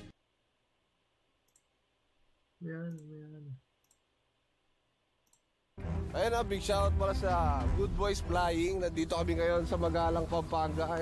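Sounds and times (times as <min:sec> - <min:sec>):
computer mouse clicks: 0:01.4 - 0:01.7, 0:03.8 - 0:04.1, 0:05.2 - 0:05.5.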